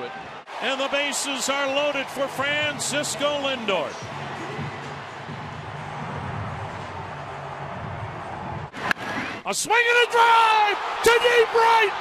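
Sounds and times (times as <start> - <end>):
stadium crowd rumble: 0.0 - 9.4.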